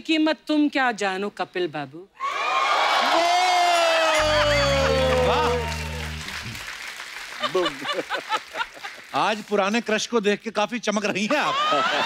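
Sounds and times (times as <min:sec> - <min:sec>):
studio audience applause: 0:02.3 - 0:10.0
sliding note over low chord: 0:04.2 - 0:06.7.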